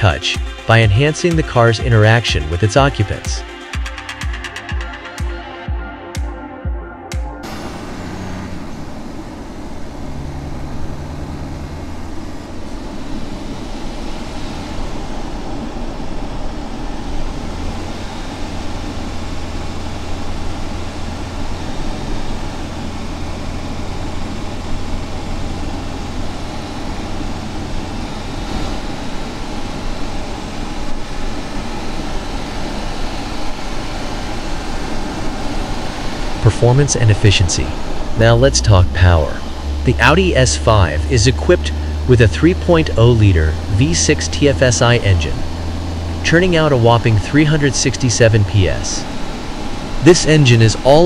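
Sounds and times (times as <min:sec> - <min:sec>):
car engine hum: 0:07.4 - 0:51.0.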